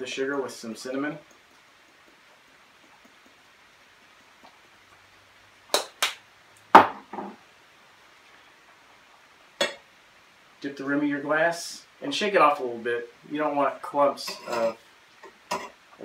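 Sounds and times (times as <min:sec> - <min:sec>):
glass knocking on wood: 0:06.8 - 0:07.4.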